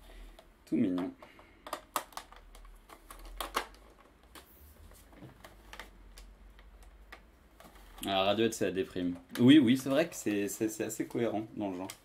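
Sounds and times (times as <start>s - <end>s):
keyboard and cables clicking: 0.4s - 4.4s.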